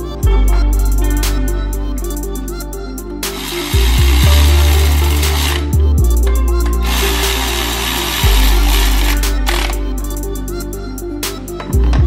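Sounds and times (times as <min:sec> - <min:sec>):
background music with bass line: 0:00.0 - 0:12.0
electric ratchet running: 0:03.4 - 0:05.7, 0:06.8 - 0:09.8.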